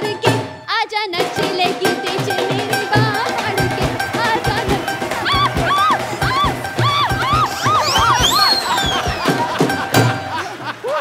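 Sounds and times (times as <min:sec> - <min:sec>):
dhol drum beating: 0:00.0 - 0:10.7
high gliding melody: 0:03.7 - 0:09.7.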